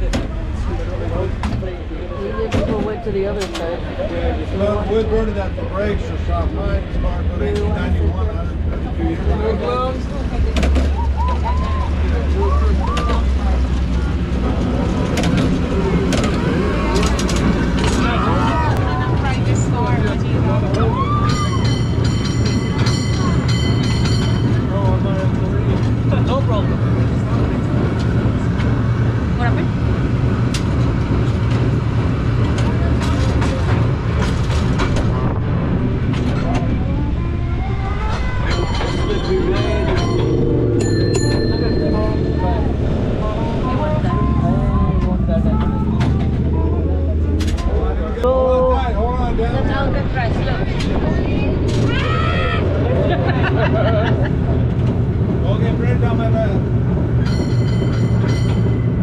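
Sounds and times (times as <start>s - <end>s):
cable car rumbling on rails: 0.0s - 59.0s
cable car bell ringing: 21.2s - 25.4s, 38.1s - 43.2s, 57.1s - 59.0s.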